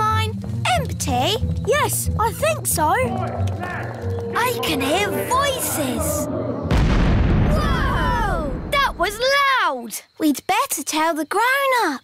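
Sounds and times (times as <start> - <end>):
children wailing: 3.0 - 6.8, 7.4 - 8.7
low rumble of ground shaking: 4.1 - 9.2
cartoon explosion bang: 6.7 - 9.1.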